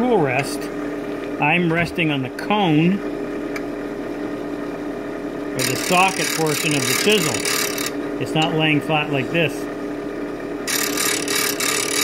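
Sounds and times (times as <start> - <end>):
bench grinder motor humming: 5.6 - 8.0, 10.6 - 12.0
chisel grinding on wheel: 5.6 - 8.0, 10.7 - 12.0.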